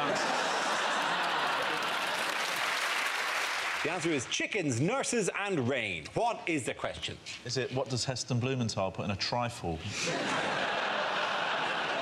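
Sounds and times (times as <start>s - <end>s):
audience laughing: 0.0s - 2.6s, 9.9s - 12.0s
audience clapping: 0.0s - 4.3s.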